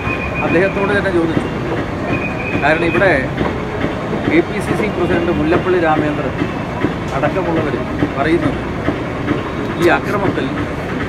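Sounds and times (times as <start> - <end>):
man speaking: 9.7 - 10.6.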